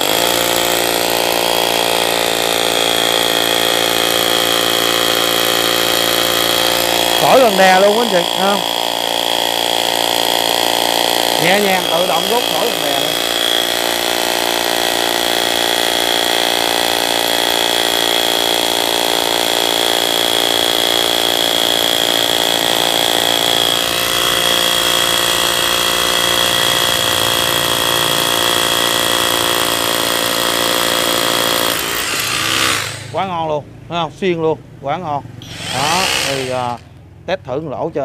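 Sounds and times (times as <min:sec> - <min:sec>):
hammer drill boring into stone: 0:00.0 - 0:33.2, 0:35.4 - 0:37.0
man's voice: 0:07.2 - 0:08.7, 0:11.4 - 0:13.2.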